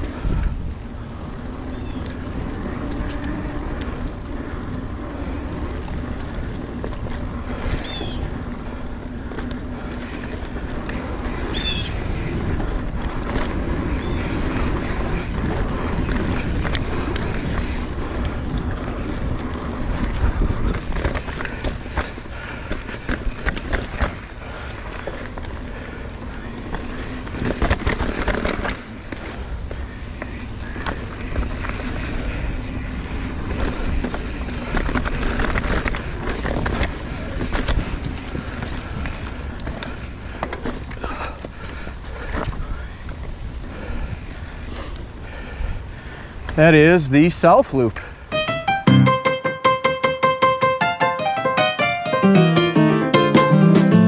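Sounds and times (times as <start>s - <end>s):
bike tyre rumble: 0.0s - 48.3s
bike rattling and knocking: 1.0s - 43.9s.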